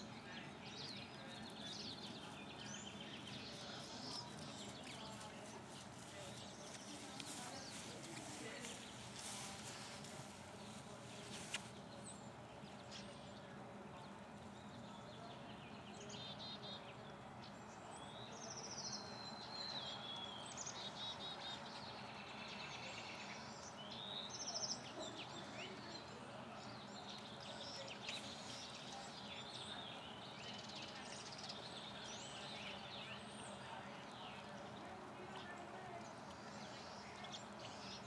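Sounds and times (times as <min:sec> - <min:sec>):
outdoor background noise: 0:00.0 - 0:38.0.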